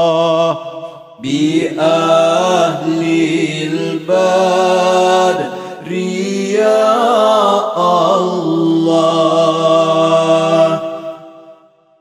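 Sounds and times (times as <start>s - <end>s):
devotional chanting: 0.0s - 11.8s.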